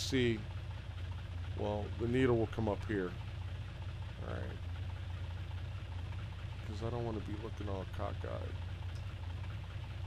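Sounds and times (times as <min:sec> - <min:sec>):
propeller plane engine idling: 0:00.0 - 0:10.0.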